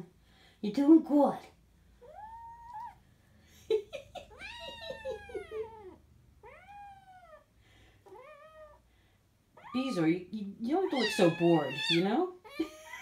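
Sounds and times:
kitten meowing: 0:02.0 - 0:03.0, 0:04.3 - 0:07.4, 0:08.1 - 0:08.8, 0:10.8 - 0:13.0.

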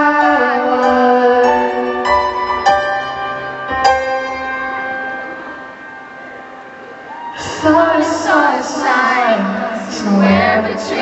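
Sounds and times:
grand piano chord ringing: 0:00.0 - 0:08.3.

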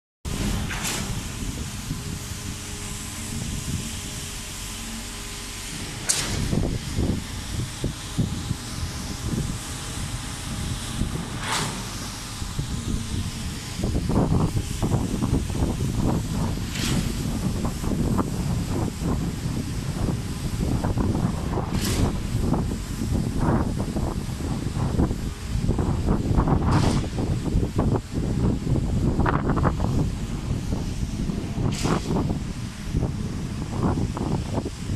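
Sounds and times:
wind buffeting microphone: 0:00.3 - 0:34.9.

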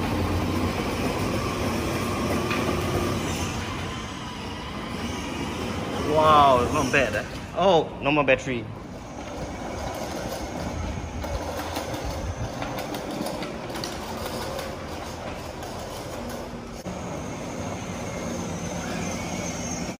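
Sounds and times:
plastic wheels rolling on concrete: 0:00.0 - 0:20.0.

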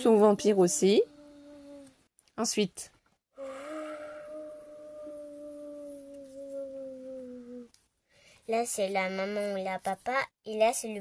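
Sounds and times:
person making ghost noise: 0:03.4 - 0:07.7.

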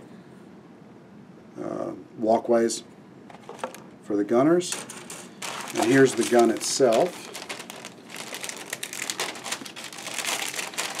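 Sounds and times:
plastic bag crinkling: 0:03.4 - 0:03.8, 0:04.7 - 0:11.0.

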